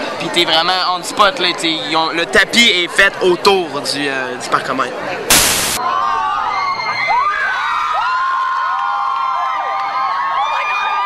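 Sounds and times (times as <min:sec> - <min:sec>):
crowd screaming: 0:05.7 - 0:11.0.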